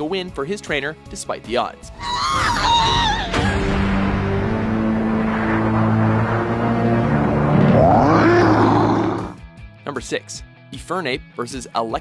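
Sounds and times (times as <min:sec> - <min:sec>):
dramatic background music: 0:01.8 - 0:09.8
cartoon creature roar: 0:02.0 - 0:03.6, 0:07.5 - 0:09.4.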